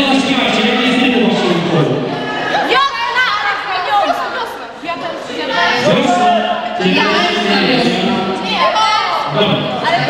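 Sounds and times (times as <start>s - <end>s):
people talking over each other: 0.0s - 10.0s.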